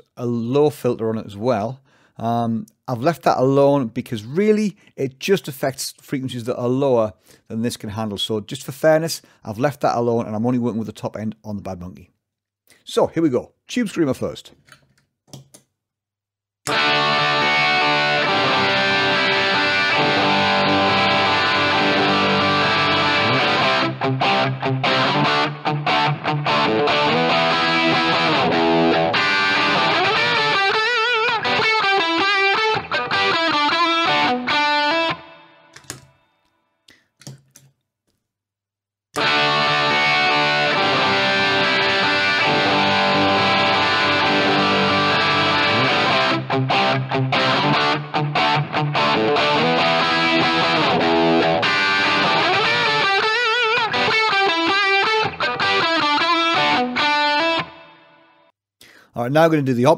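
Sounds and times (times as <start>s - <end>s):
overdriven electric guitar phrase: 16.7s - 35.6s, 39.2s - 58.3s.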